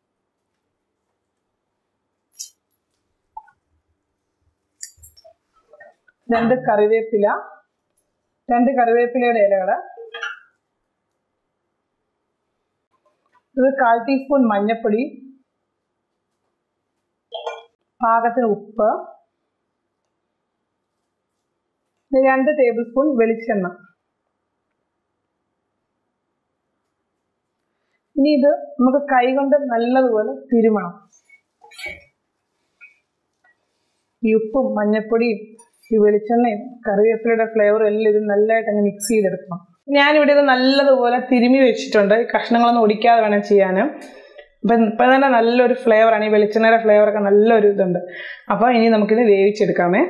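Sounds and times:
woman speaking: 6.3 - 7.6, 8.5 - 10.2, 13.6 - 15.2, 18.0 - 19.1, 22.1 - 23.8, 28.2 - 31.0, 34.2 - 50.0.

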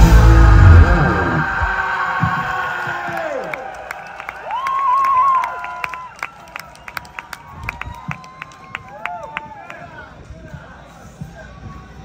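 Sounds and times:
guitar feedback tone: 0.0 - 2.4
electric guitars ringing out: 0.0 - 2.5
faint crowd cheering: 0.0 - 12.0.

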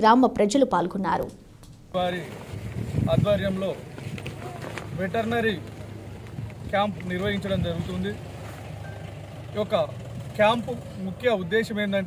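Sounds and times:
man speaking: 9.6 - 12.0.

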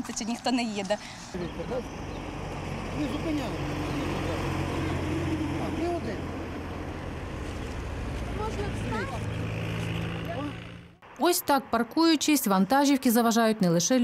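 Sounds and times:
truck engines running: 0.0 - 11.2.

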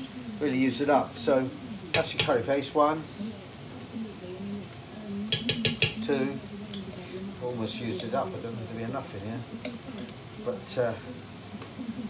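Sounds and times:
faint sizzle of frying: 0.0 - 12.0
man speaking: 0.4 - 3.0, 10.4 - 11.1.

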